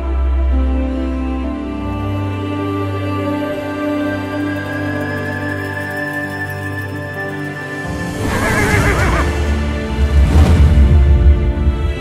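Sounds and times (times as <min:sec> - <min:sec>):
music: 0:00.0 - 0:12.0
horse whinnying: 0:08.1 - 0:09.6.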